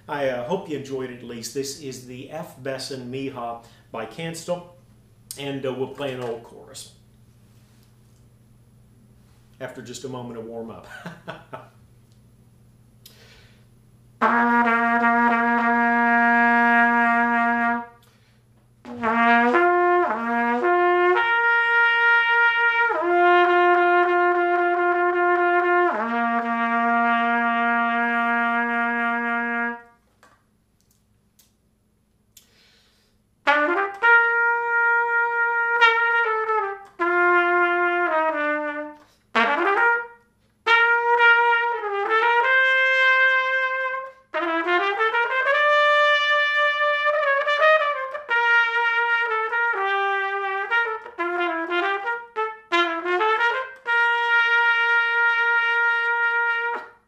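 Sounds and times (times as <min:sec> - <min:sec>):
solo trumpet notes: 0:14.2 - 0:18.1, 0:18.8 - 0:30.0, 0:33.4 - 0:57.0.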